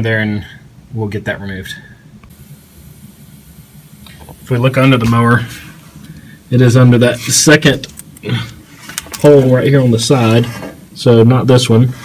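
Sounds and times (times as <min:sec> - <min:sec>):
background hiss and rumble: 0:00.0 - 0:12.0.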